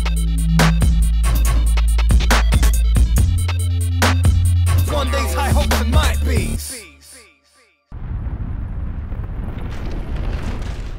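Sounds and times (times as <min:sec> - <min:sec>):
music: 0:00.0 - 0:07.9.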